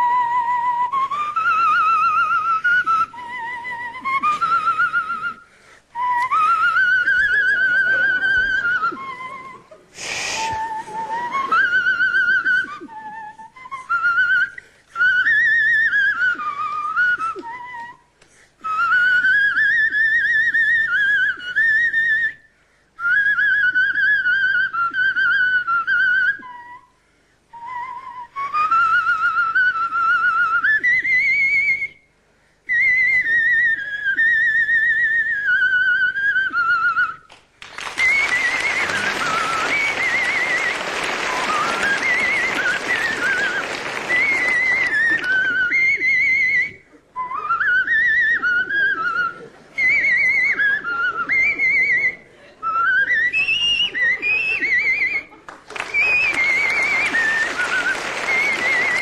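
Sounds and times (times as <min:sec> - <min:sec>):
man whistling through fingers: 0:00.0 - 0:22.4, 0:32.7 - 0:37.3, 0:37.9 - 0:59.0
audience applause: 0:37.6 - 0:45.7, 0:55.4 - 0:59.0.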